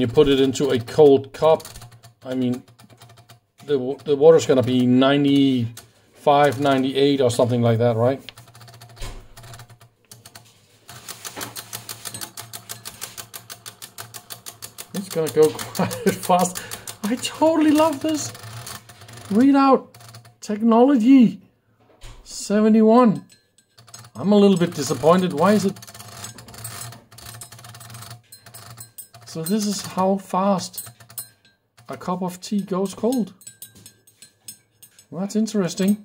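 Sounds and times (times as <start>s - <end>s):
motor and drum counter ticking: 0.0s - 10.4s, 11.0s - 20.5s, 23.1s - 35.1s.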